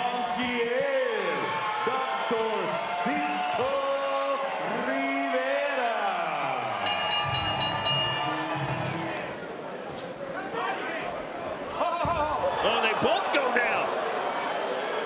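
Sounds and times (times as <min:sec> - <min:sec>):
crowd noise: 0:00.0 - 0:15.0.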